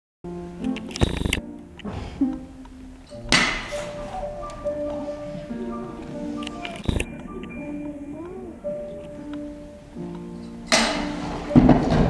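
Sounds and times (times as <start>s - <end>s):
background music with held tones: 0.3s - 12.0s.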